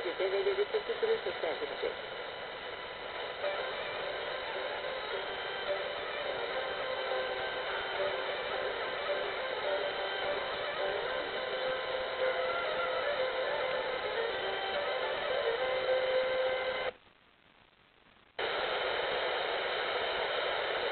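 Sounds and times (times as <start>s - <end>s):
radio reception hiss: 0.0s - 20.9s
tinny folk music on radio: 0.0s - 20.9s.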